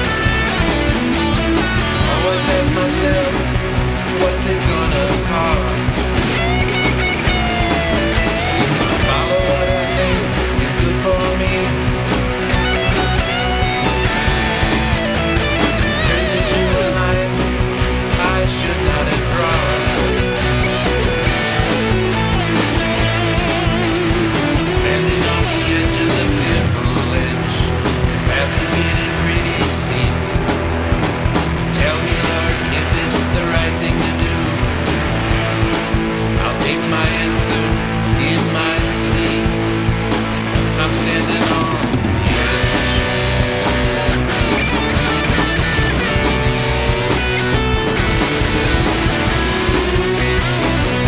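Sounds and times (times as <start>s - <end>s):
drums keeping steady beat: 0.0s - 51.0s
instrumental rock music: 0.0s - 51.0s.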